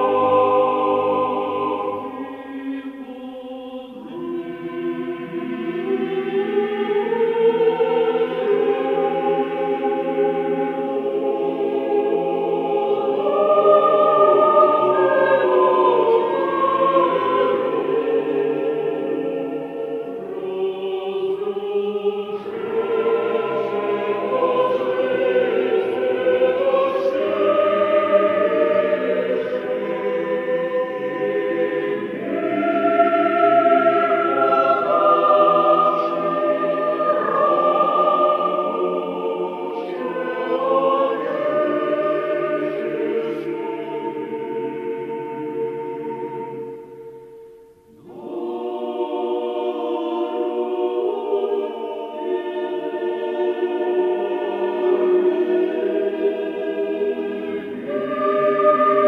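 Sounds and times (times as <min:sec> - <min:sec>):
choir singing long held notes: 0:00.0 - 0:59.0.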